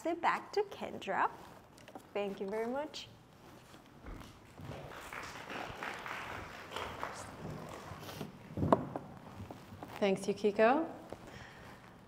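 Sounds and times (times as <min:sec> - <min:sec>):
light scattered applause: 0:04.8 - 0:07.4.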